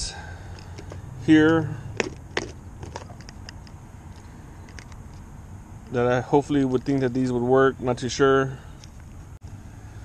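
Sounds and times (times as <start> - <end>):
plastic box clicks and rattles: 2.0 - 3.6.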